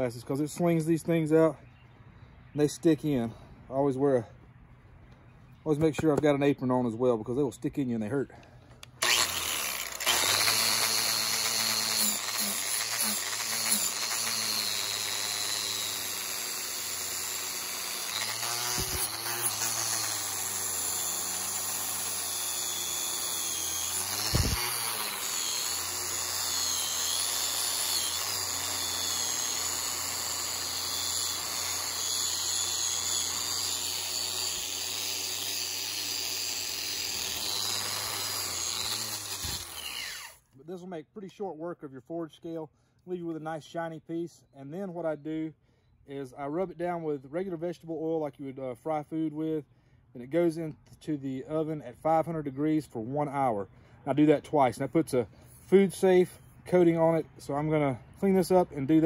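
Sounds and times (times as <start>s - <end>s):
angle grinder wire brush on metal: 9.0s - 40.4s.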